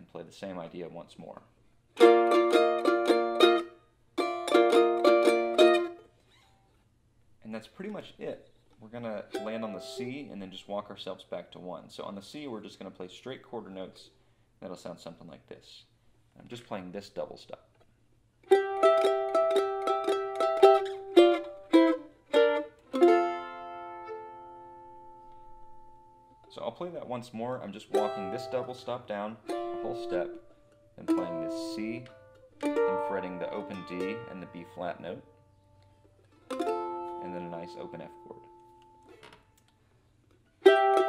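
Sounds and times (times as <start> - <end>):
mandolin picked melody: 2.0 - 6.1, 9.0 - 10.5, 18.4 - 26.5, 27.5 - 39.3, 40.5 - 41.0.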